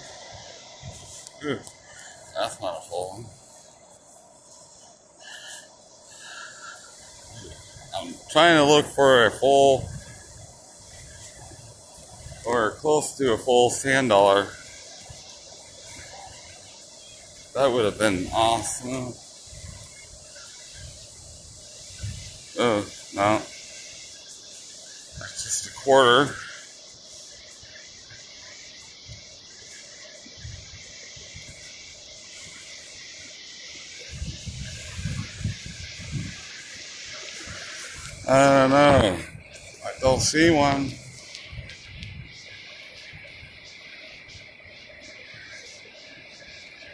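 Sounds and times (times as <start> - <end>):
breeze: 0.0 - 46.9
surf washing: 0.0 - 46.9.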